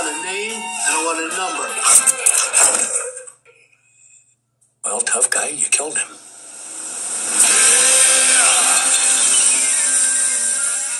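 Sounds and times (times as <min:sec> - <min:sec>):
dense noisy drone: 0:06.0 - 0:10.9
gliding tones: 0:06.2 - 0:10.9.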